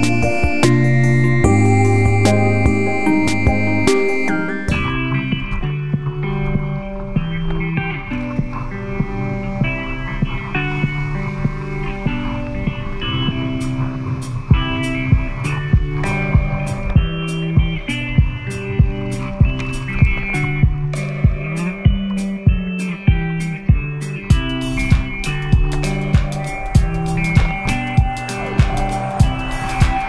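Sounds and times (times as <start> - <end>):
instrumental music: 0.0 - 30.0.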